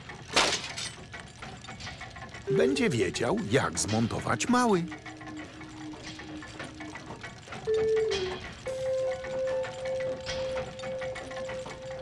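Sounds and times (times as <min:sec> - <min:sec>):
parts clattering onto wooden floor: 0:00.3 - 0:01.0.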